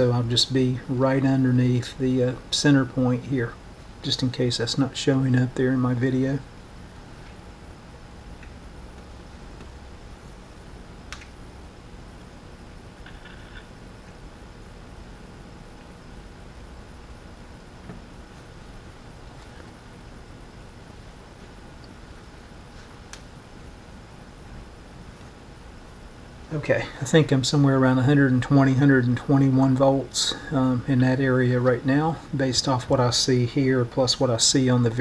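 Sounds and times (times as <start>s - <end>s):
electrical hum and hiss: 0.0s - 35.0s
soft clicks: 11.1s - 11.4s.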